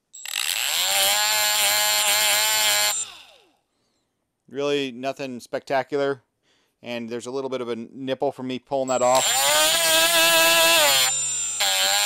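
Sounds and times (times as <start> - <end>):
drill motor whine: 0.2 - 3.5, 9.0 - 12.0
thin high electronic tone: 8.9 - 12.0.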